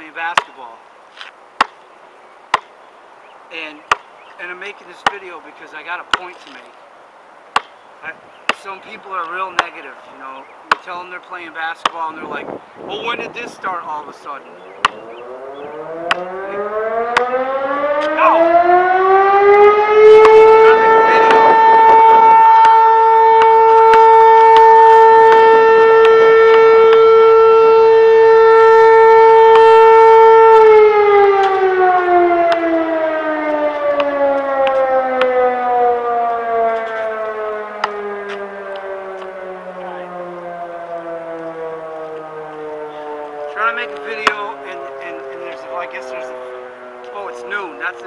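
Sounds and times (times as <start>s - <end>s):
siren wailing: 12.2s - 48.0s.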